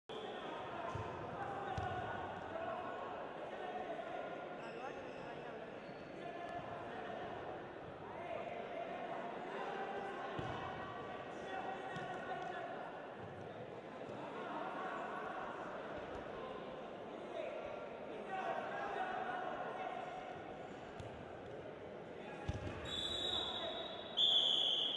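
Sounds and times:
voices calling out in a hall: 0.1s - 24.9s.

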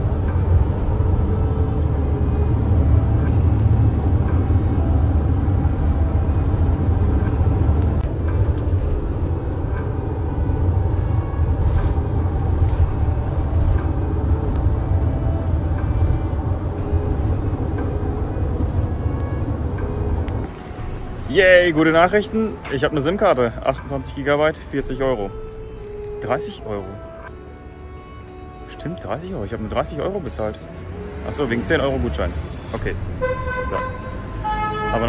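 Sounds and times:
van engine and road noise: 0.0s - 35.0s.

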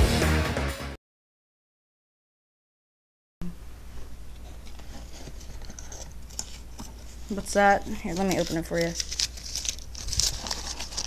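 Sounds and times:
paper crinkling and rustling: 4.6s - 11.0s.

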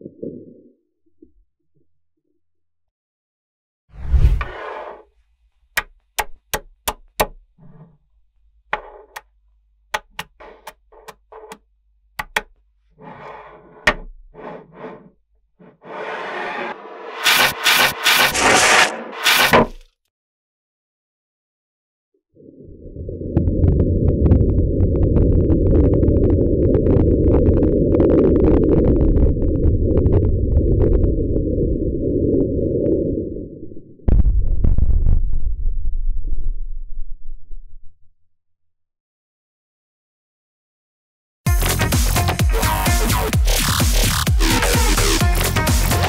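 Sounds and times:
rasping scrapes: 4.0s - 5.2s, 10.1s - 11.6s, 12.9s - 19.8s
deep rumble: 22.5s - 38.2s.

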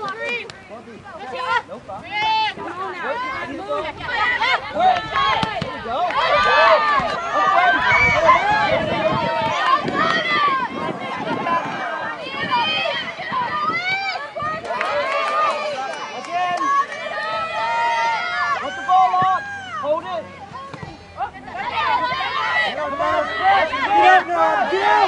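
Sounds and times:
people shouting and calling: 1.2s - 25.0s.

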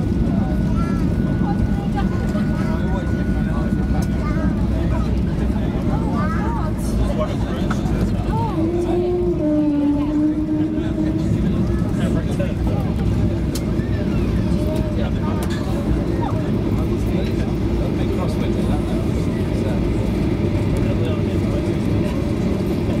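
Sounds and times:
low rumble of engines and wheels: 0.0s - 23.0s
passengers talking: 0.0s - 23.0s.

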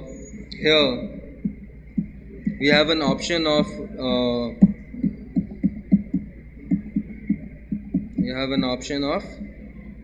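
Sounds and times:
electrical hum: 0.0s - 10.0s
fingers tapping laptop keys: 1.4s - 8.8s.

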